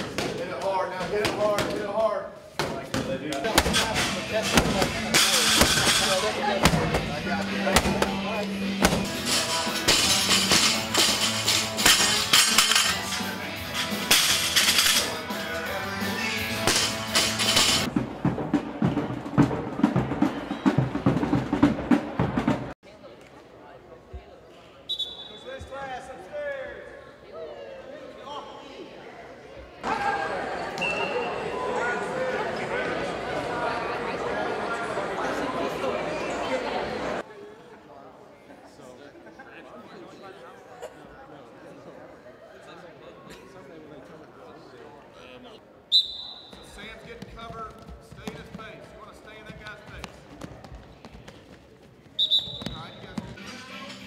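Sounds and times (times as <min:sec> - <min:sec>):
voices echoing in hall: 0:22.9 - 0:54.0
whistle blast: 0:24.9 - 0:25.5, 0:45.9 - 0:46.7, 0:52.2 - 0:53.2
shoes squeaking on gym floor: 0:46.0 - 0:53.9.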